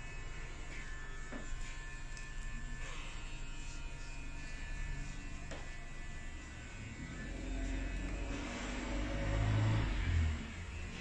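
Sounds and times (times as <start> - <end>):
razor scraping scalp: 0.0 - 11.0.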